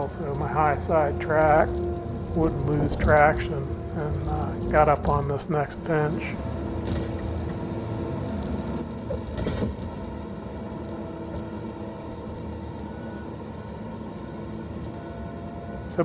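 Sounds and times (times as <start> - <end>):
heavy machine engine running: 0.0 - 16.0.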